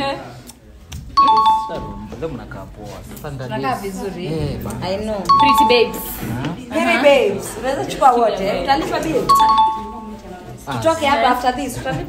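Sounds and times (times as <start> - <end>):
voices talking: 5.3 - 7.6.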